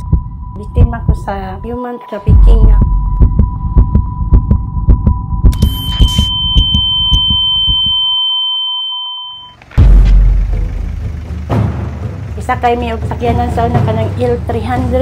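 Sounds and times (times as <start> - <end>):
heartbeat-like low pulses: 0.0 - 8.1, 9.8 - 12.5
steady electronic tone: 0.0 - 11.4
deep boom trailing into rumble: 9.8 - 12.0.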